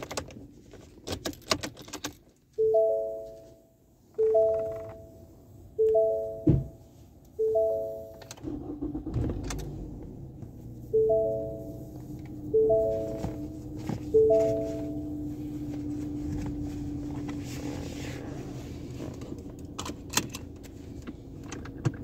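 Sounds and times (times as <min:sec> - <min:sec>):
car warning chime: 0:02.6 - 0:09.1, 0:10.7 - 0:15.6
thump: 0:06.4 - 0:06.7.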